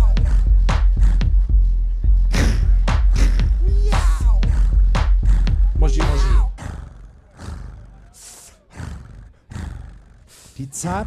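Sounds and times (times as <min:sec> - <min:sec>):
looped bass beat: 0:00.0 - 0:06.6.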